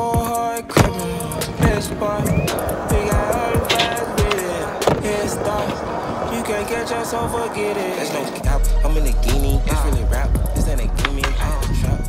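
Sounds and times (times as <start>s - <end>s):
hip-hop beat: 0.0s - 12.0s.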